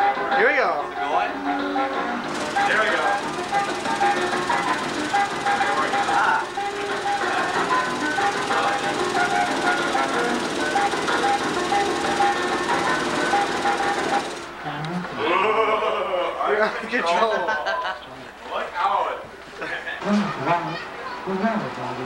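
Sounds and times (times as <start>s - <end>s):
rattling buzz: 2.3s - 14.6s.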